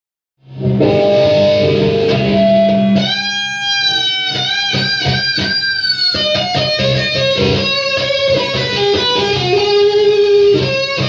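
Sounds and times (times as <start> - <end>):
electric guitar lead notes: 0.4 - 11.0.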